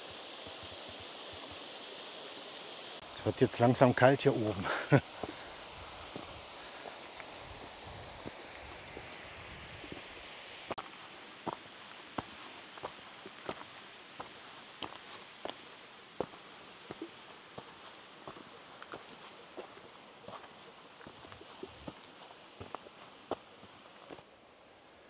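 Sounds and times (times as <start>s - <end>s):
faint steady hiss: 0.0s - 25.0s
footsteps on rocky path: 5.1s - 9.1s, 10.7s - 24.2s.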